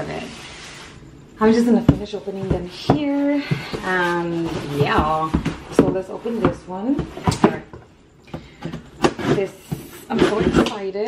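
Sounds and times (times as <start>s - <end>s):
cardboard knocks and rustles: 1.8s - 10.8s.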